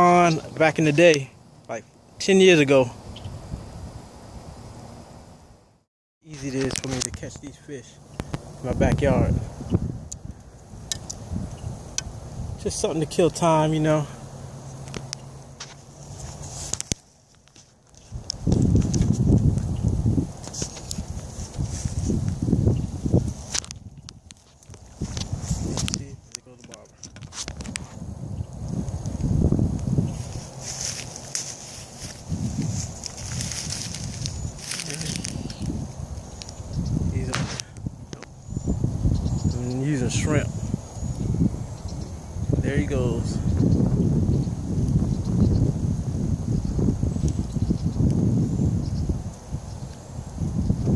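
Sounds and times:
wind buffeting microphone: 2.2s - 4.8s, 6.3s - 15.4s, 18.0s - 50.9s.

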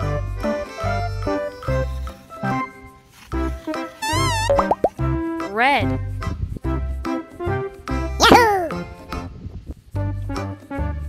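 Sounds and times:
rising bloops: 4.0s - 4.9s
wobbling tone: 4.0s - 4.9s.

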